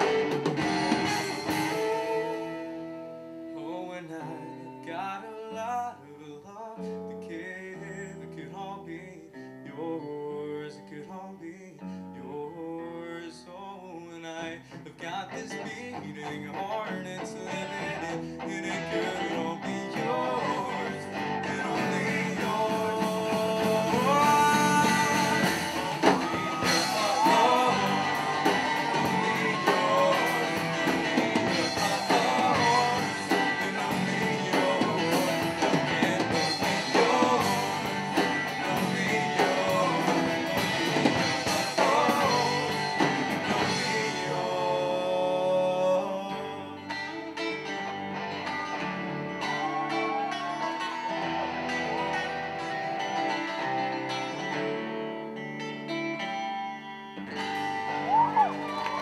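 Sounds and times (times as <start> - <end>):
drum kit playing: 0.0 - 2.9, 19.5 - 44.5
bass guitar: 0.0 - 3.6, 14.7 - 59.0
electric guitars: 0.0 - 10.6, 14.4 - 59.0.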